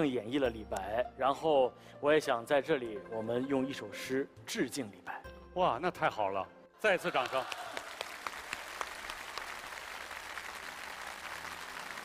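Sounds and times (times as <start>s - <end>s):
audience applauding: 7.0s - 12.0s.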